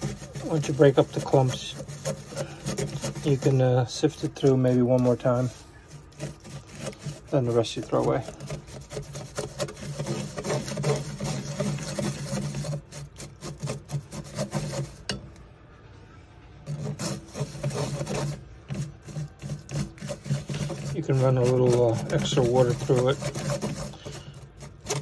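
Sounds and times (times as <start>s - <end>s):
toothbrush scrubbing mesh strainer: 0.0s - 15.1s, 16.6s - 25.0s.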